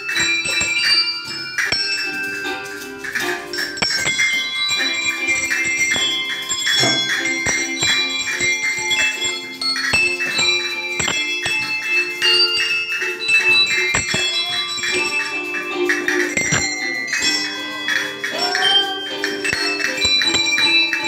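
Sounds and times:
handbells playing a tune: 0.0s - 21.0s.

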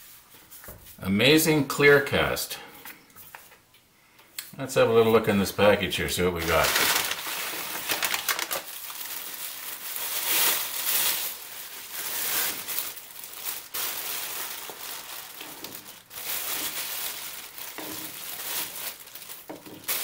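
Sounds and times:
packing material crinkling: 6.2s - 20.0s.

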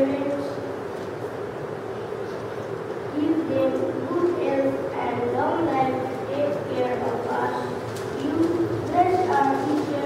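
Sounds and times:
child speaking into a microphone: 0.0s - 0.8s, 3.1s - 10.0s.

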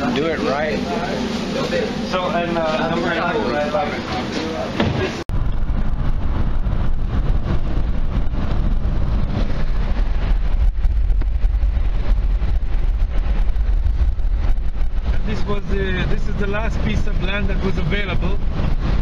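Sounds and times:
car road and wind noise: 0.0s - 19.0s.

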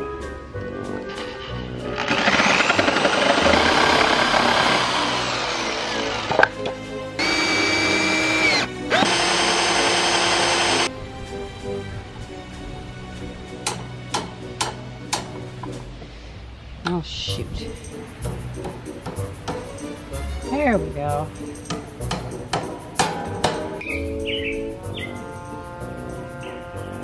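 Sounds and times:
background music: 0.0s - 27.0s
reciprocating saw cutting wood: 1.8s - 6.6s, 7.2s - 10.9s
cordless drill boring wood: 2.0s - 6.5s, 7.2s - 10.9s.

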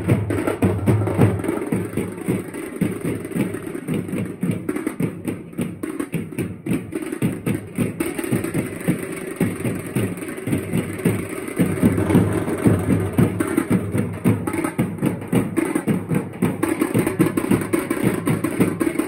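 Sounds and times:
fast drumming: 0.0s - 19.0s.

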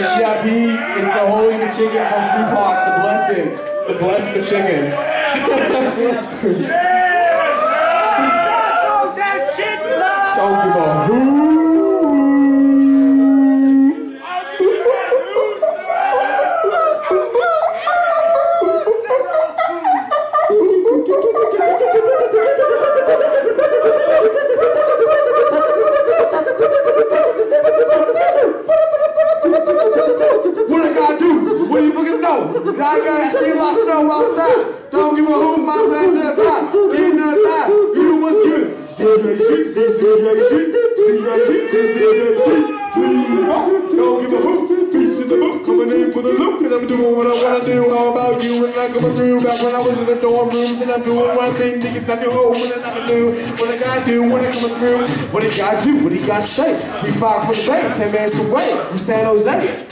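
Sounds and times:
hip-hop backing music: 44.5s - 59.9s.

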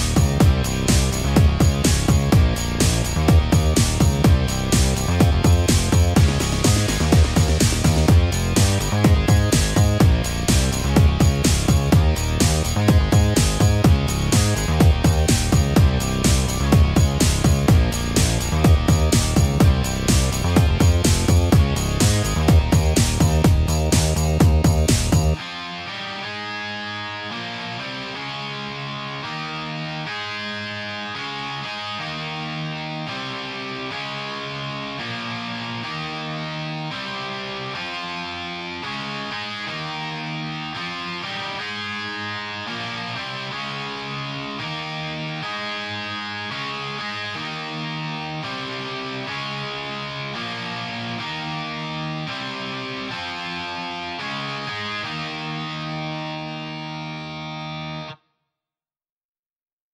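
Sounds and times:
distorted electric guitar chords: 0.0s - 58.2s.

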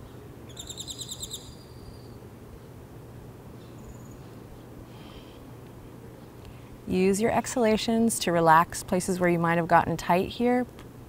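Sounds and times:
low background hiss: 0.0s - 11.0s
bird calling: 0.5s - 2.2s.

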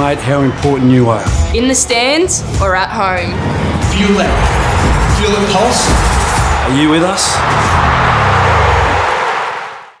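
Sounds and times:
noisy roar: 3.4s - 10.0s.

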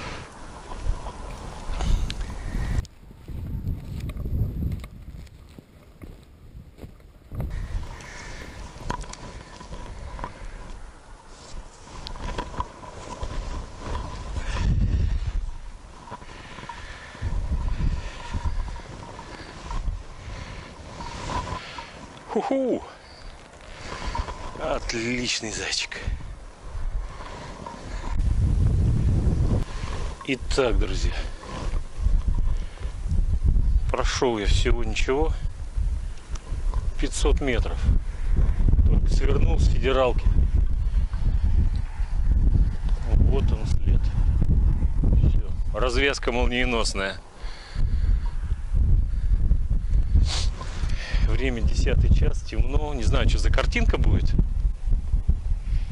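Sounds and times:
footsteps in snow: 0.0s - 26.0s
rustling dry weeds: 0.0s - 55.9s
wind buffeting microphone: 0.0s - 55.9s.

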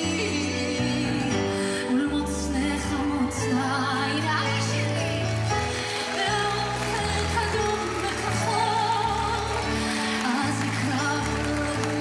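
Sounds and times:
woman singing slow song: 0.0s - 5.3s, 6.0s - 12.0s.

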